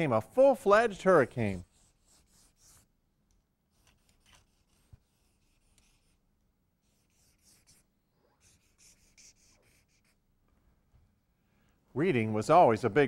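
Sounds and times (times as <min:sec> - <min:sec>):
marker squeaking on paper: 0:06.8 - 0:10.2.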